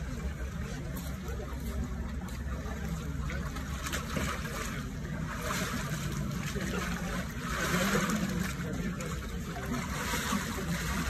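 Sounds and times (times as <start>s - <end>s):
water splashing and churning: 0.0s - 11.0s.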